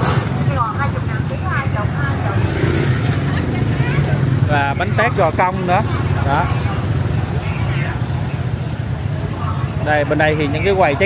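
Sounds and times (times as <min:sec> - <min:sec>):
faint crowd voices: 0:00.0 - 0:11.0
motorbike traffic passing: 0:00.0 - 0:11.0.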